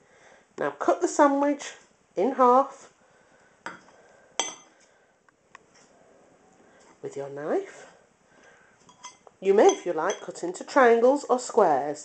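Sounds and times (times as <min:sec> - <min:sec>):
knife clinking on ceramic plate: 0:04.4 - 0:04.7, 0:08.9 - 0:10.3.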